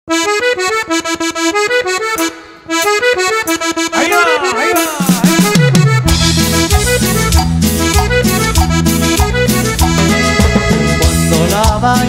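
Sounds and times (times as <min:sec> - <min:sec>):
accordion playing cumbia: 0:00.1 - 0:12.0.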